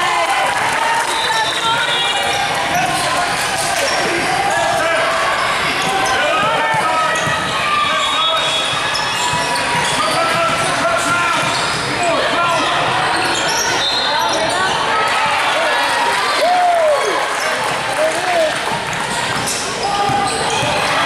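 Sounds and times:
sneakers squeaking: 0:01.1 - 0:15.6, 0:18.7 - 0:21.0
basketball bouncing: 0:05.8 - 0:07.6, 0:18.6 - 0:21.0.

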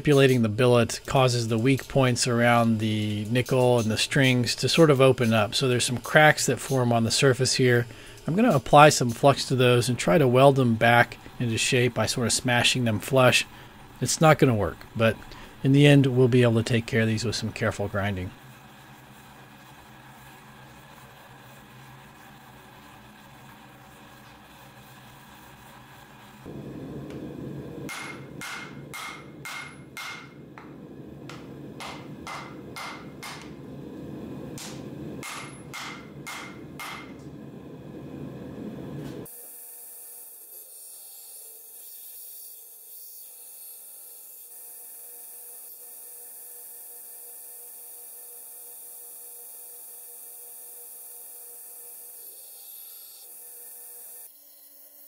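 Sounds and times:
faint hum and hiss: 0:00.0 - 0:39.3
forge noise: 0:00.0 - 0:39.3
hammer ringing on anvil: 0:27.9 - 0:30.7, 0:31.8 - 0:33.5, 0:35.2 - 0:37.2.

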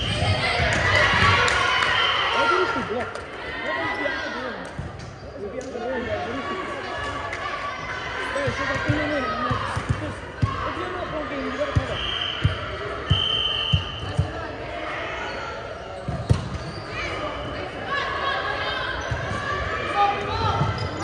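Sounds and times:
players' voices: 0:00.0 - 0:21.0.

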